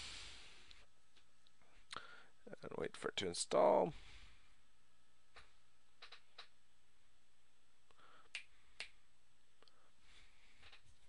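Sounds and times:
sharp clicks: 5.4 - 6.6.

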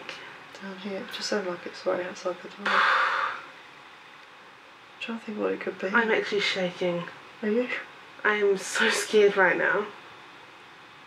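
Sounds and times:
breathy rush of noise: 2.6 - 3.6.

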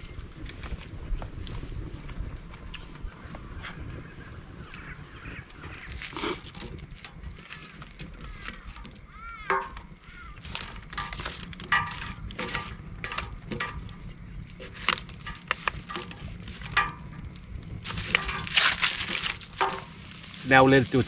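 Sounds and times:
fire crackling: 0.0 - 21.0
sticks clacking and scraping coals: 4.6 - 21.0.

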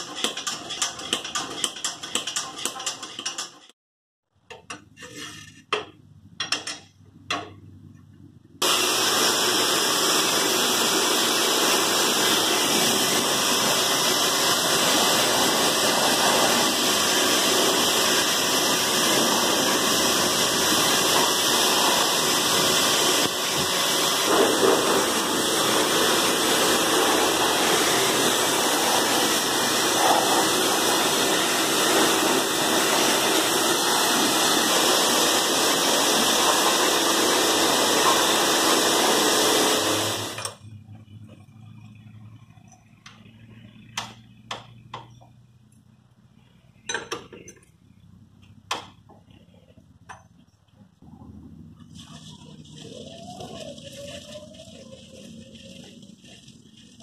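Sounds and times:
pressure washer spraying: 8.6 - 40.5, 51.7 - 57.0.

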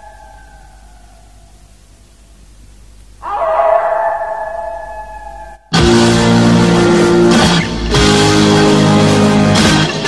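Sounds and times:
dog howling: 0.0 - 1.2, 3.2 - 5.7.

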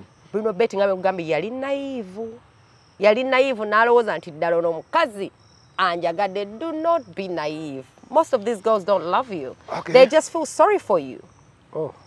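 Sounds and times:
high insect trill: 0.0 - 12.0
woman speaking: 0.4 - 2.4, 3.0 - 11.2.

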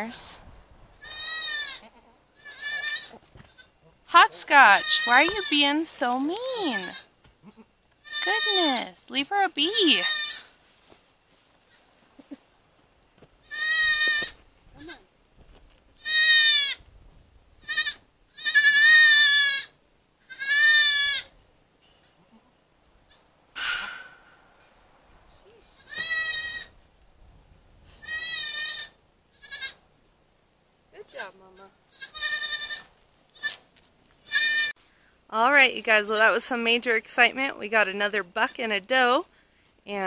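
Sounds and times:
goat kids bleating: 0.9 - 8.9, 9.6 - 10.6, 13.4 - 15.1, 16.0 - 16.8, 17.6 - 21.4, 22.0 - 24.1, 25.4 - 26.8, 27.9 - 29.8, 31.0 - 34.8
rustling: 10.4 - 16.1, 32.6 - 35.1.

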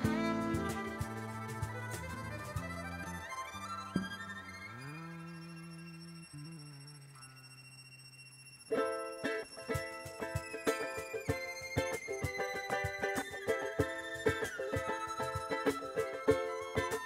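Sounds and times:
cajon hits: 0.0 - 2.8, 9.8 - 17.0
strummed acoustic guitar: 0.0 - 3.0
bass guitar: 0.0 - 6.9
violin: 0.0 - 17.0.

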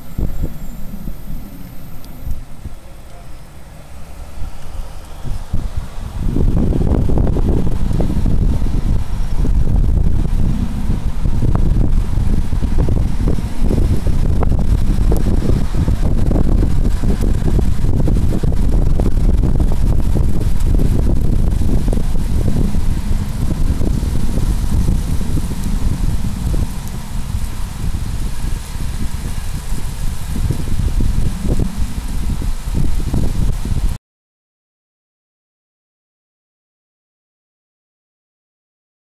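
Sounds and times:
outdoor ambience: 0.0 - 34.0
wind buffeting microphone: 0.0 - 34.0.

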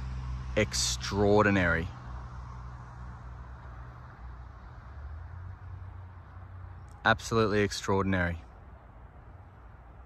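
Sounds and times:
distant road traffic rumble: 0.0 - 10.0.

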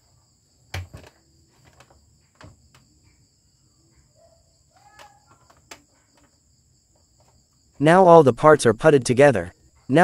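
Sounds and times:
high-pitched insect trill: 0.0 - 8.1
man's voice: 7.8 - 10.0.

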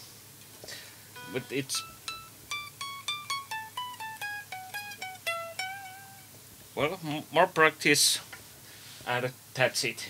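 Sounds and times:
electric guitar picked notes: 1.2 - 6.3.

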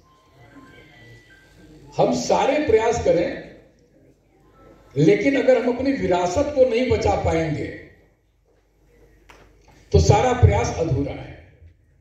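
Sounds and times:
faint background voices: 0.0 - 2.2, 3.5 - 5.0, 8.0 - 9.9.

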